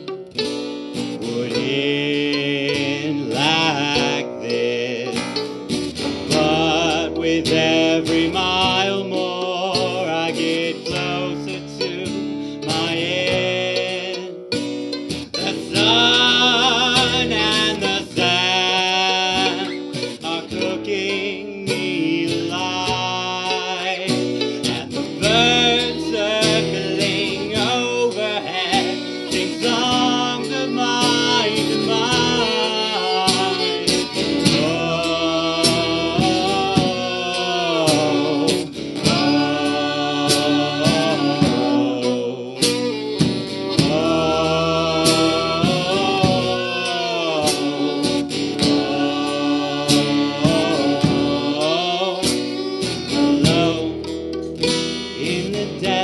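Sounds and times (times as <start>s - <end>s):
fiddle: 0.0s - 56.0s
strummed acoustic guitar: 0.0s - 56.0s
man singing: 1.0s - 56.0s.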